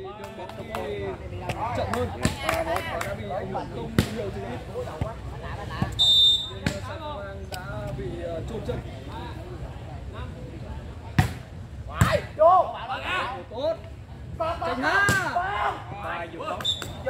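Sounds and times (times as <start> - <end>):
crowd chatter and calls: 0.0 - 17.0
shrill whistle blast: 6.0 - 6.6.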